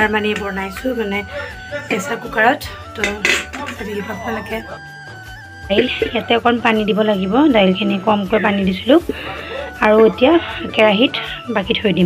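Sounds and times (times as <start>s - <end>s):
background music with held notes: 0.0s - 12.0s
dishes and utensils clinking: 3.0s - 4.4s.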